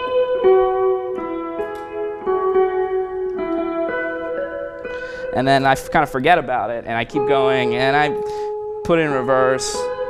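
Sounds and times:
clean electric guitar melody: 0.0 - 10.0.

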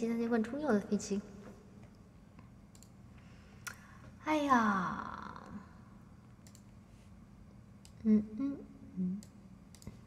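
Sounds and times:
room hum: 0.0 - 10.0
computer mouse clicks: 1.8 - 3.0, 6.3 - 6.8, 9.2 - 10.0.

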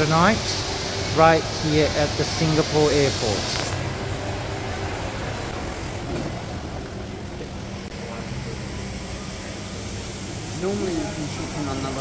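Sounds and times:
indoor hall rush and hum: 0.0 - 12.0.

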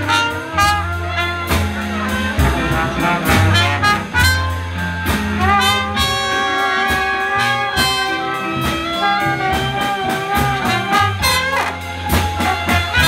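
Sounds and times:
jazz band playing: 0.0 - 13.0.

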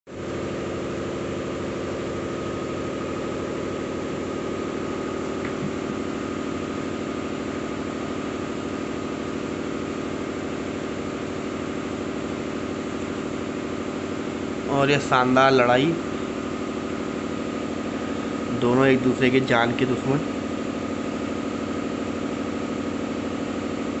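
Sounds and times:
motor humming with high whine: 0.1 - 24.0.

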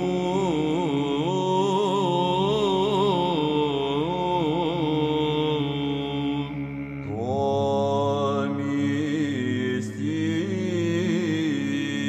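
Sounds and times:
ornamented chant melody: 0.0 - 12.0
sustained vocal drone: 0.0 - 12.0.

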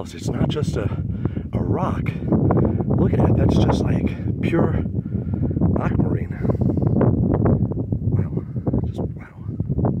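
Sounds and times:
man's voice: 0.0 - 4.9, 5.7 - 6.6, 8.1 - 9.6
wind buffeting microphone: 0.0 - 10.0.

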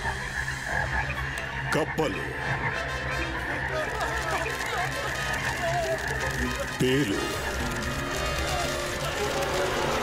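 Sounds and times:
frogs croaking chorus: 0.0 - 10.0.

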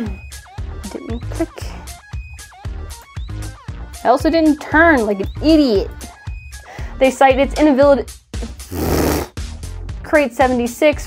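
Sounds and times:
low music bed: 0.0 - 11.0
person's breathy sputter: 8.4 - 9.3.

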